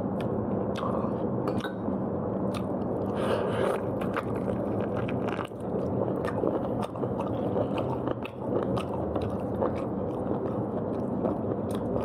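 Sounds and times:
person chewing food: 2.5s - 12.0s.

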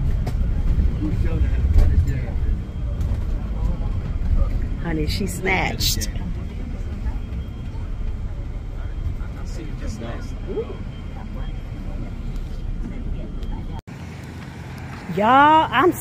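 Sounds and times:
bus engine and road rumble: 0.0s - 16.0s
outdoor rumble: 0.0s - 16.0s.

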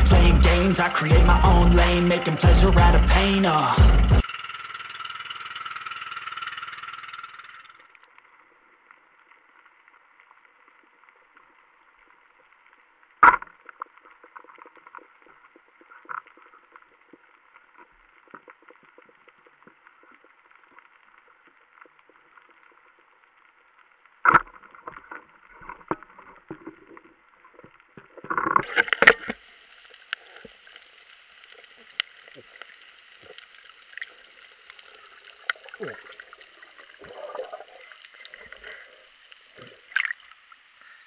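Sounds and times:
hip-hop music: 0.0s - 4.2s
crackle of tiny underwater clicks: 5.4s - 41.0s.

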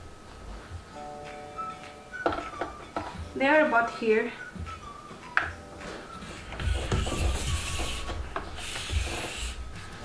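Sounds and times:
speaker rubbing and scraping on desk: 5.9s - 10.0s.

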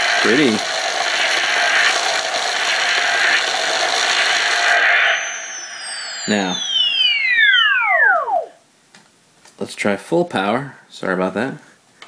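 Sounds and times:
toy blaster hissing: 0.0s - 8.5s
falling electronic whistle tones: 3.0s - 8.6s.

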